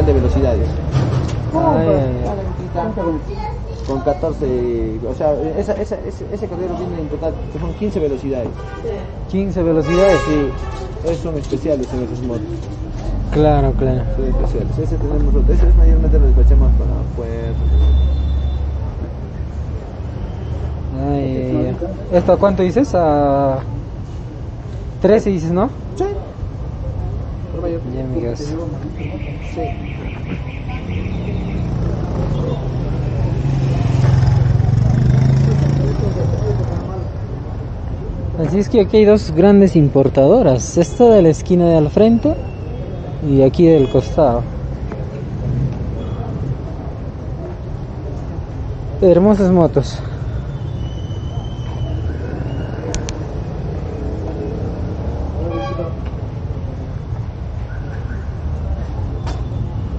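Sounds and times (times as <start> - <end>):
low street rumble: 0.0 - 59.9
vehicle horn toot: 9.8 - 10.9, 17.6 - 18.8, 55.4 - 56.0
motorcycle engine passing by: 30.7 - 37.0.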